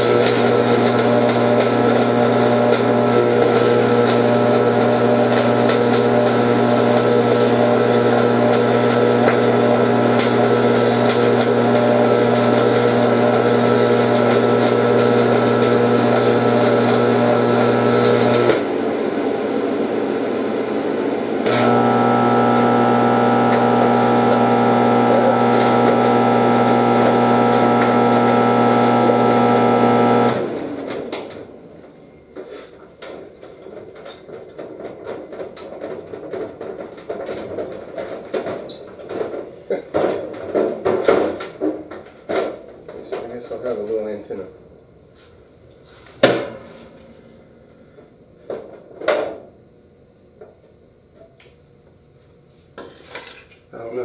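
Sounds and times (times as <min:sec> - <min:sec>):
welding arc crackling: 0:00.0 - 0:18.9, 0:21.4 - 0:31.4
welder electrical hum: 0:00.0 - 0:34.0.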